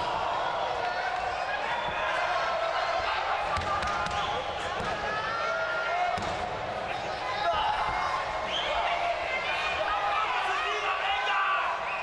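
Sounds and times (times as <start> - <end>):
crowd shouting and chatter: 0.0 - 12.0.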